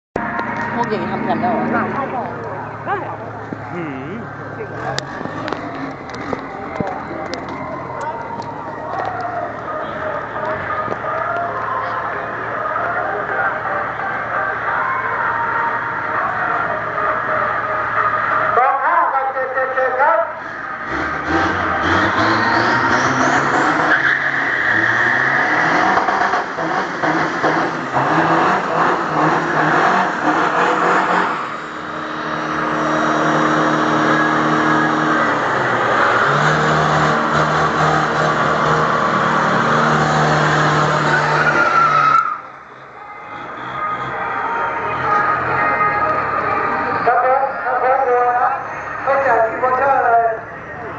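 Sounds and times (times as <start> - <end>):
diesel engines revving: 0.2 - 50.9
tyres spinning in a burnout: 20.2 - 48.3.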